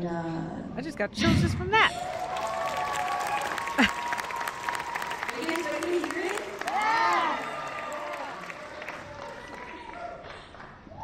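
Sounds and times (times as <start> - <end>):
audience applauding and cheering: 1.9 - 11.0.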